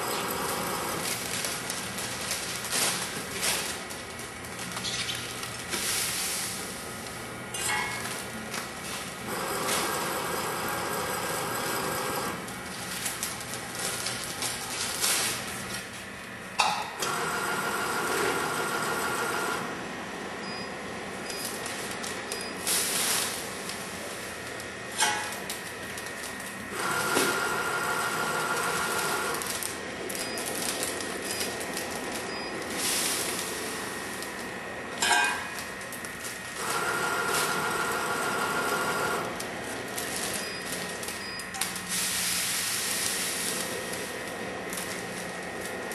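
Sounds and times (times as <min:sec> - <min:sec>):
powder feed whine: 0:00.0 - 0:04.6, 0:08.4 - 0:35.0, 0:35.6 - 0:45.9
rushing hiss of sugar: 0:41.9 - 0:43.8.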